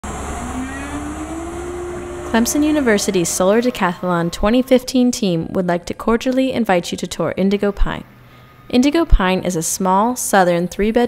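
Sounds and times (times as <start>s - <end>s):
cnc router humming: 0.0s - 5.1s.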